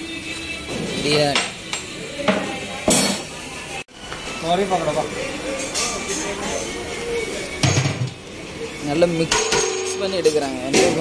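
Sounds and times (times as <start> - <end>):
metal pots clanking: 9.2 - 11.0.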